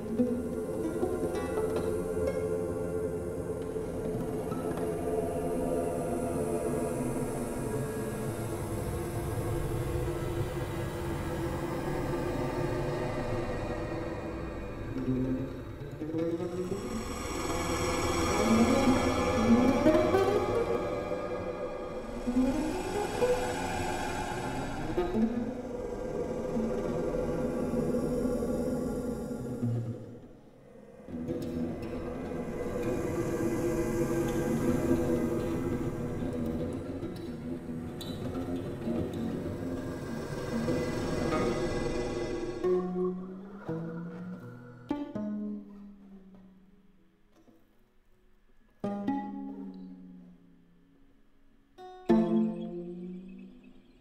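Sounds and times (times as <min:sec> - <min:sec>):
electroacoustic music with lute: 0:00.0 - 0:05.1, 0:31.0 - 0:40.0, 0:42.6 - 0:54.0.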